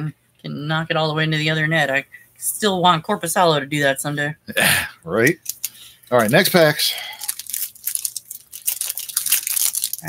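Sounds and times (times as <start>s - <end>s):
foil wrapper tearing and crinkling: 5.4s - 10.0s.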